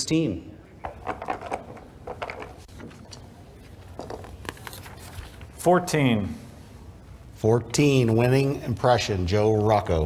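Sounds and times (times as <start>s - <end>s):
paper rustling: 1.3s - 5.6s.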